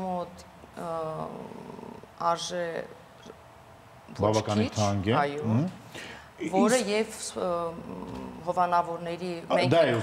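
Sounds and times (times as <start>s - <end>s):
person talking: 4.2s - 5.0s.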